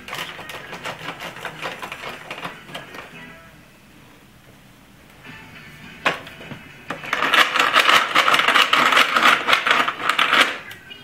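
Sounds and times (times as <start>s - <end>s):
plastic toy clattering and rattling: 0.0s - 3.1s, 6.9s - 10.7s.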